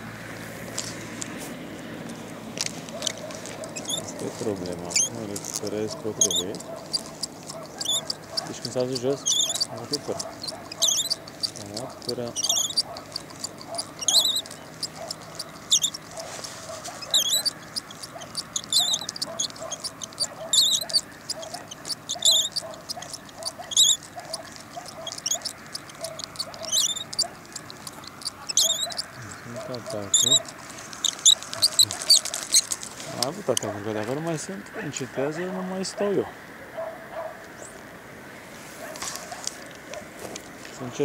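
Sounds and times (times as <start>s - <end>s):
bird chirping: 2.1s - 34.2s.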